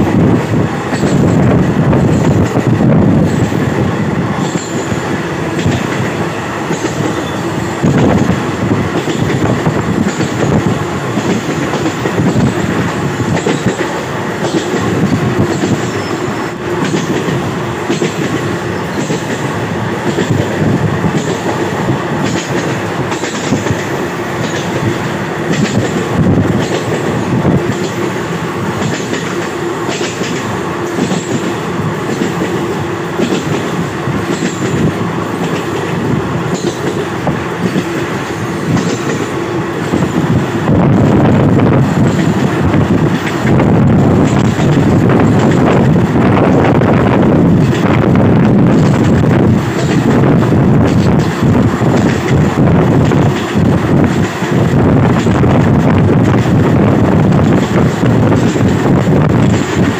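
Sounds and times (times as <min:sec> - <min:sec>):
train wheels rumbling on rails: 0:00.0 - 0:59.9
wheels clicking over rail joints: 0:00.0 - 0:59.9.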